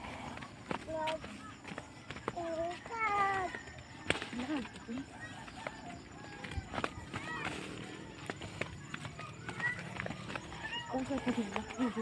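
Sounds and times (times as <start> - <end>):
footsteps on dirt path: 0.0 - 12.0.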